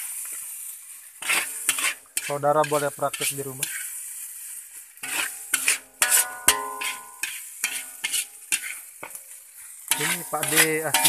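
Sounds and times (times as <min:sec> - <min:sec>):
food sizzling: 0:00.0 - 0:11.0
metal spatula scraping wok: 0:00.9 - 0:11.0
wok ringing: 0:05.0 - 0:08.8, 0:09.9 - 0:11.0.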